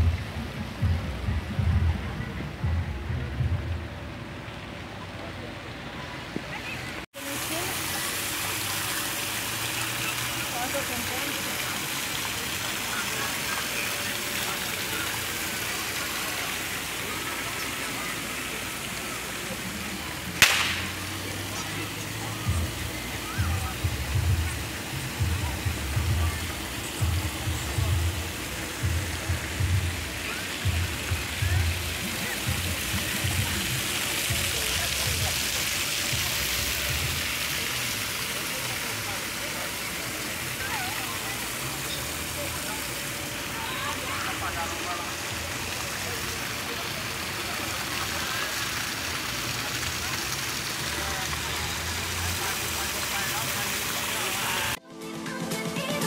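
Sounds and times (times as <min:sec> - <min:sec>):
water fountain splashing: 0:00.0 - 0:54.8
murmur of people: 0:00.0 - 0:56.0.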